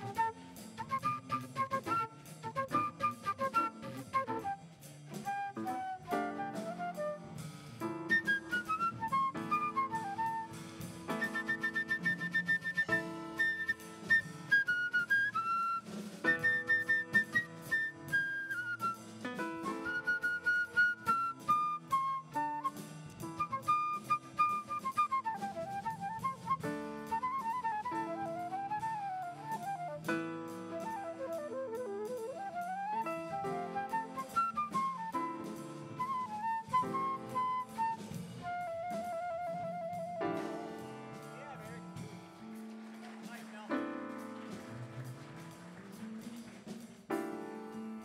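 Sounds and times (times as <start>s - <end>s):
drums and cymbals: 0.0s - 48.0s
jazz flute solo: 0.0s - 48.0s.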